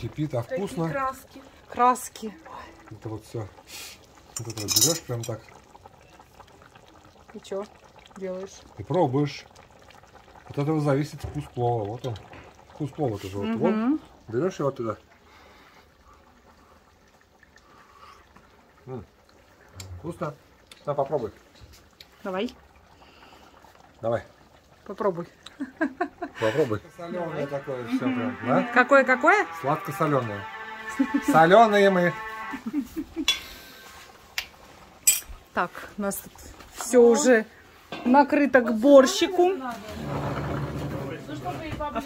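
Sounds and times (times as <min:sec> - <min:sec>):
broth simmering in a pot: 0:00.0 - 0:42.0
metal spoon clinking cookware: 0:04.4 - 0:05.4, 0:33.3 - 0:33.5, 0:35.0 - 0:35.3.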